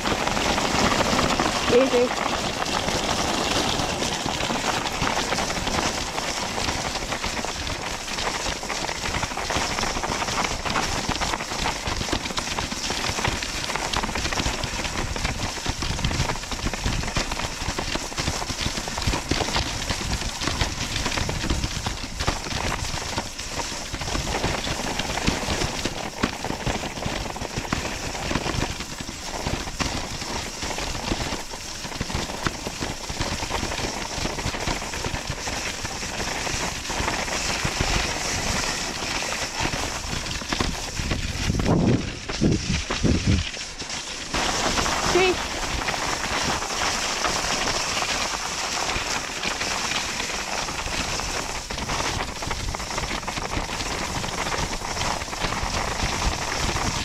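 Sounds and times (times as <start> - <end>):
sled runners scraping on icy snow: 0.0 - 57.0.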